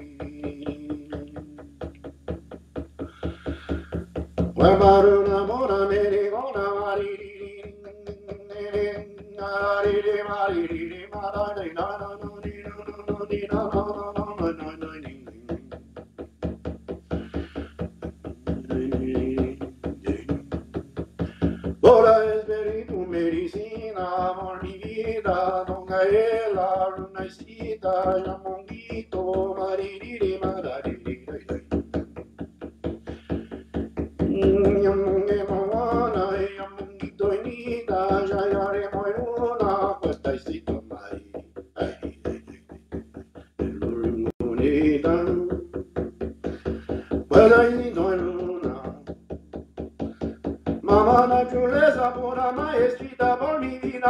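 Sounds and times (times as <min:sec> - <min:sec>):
person chanting wordless phrases: 0:00.0 - 0:02.0, 0:04.6 - 0:15.7, 0:18.3 - 0:31.7, 0:43.6 - 0:45.6, 0:47.3 - 0:49.1
hand drum beating: 0:00.0 - 0:54.0.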